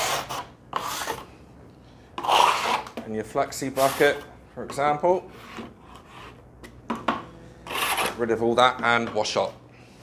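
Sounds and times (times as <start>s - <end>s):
plastering tool scraping wet plaster: 0.0s - 1.2s, 2.2s - 3.0s, 3.7s - 4.3s, 7.7s - 8.2s.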